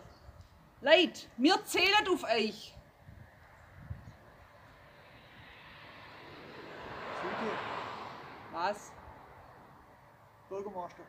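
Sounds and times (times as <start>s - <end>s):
passing vehicle: 2.8s - 11.0s.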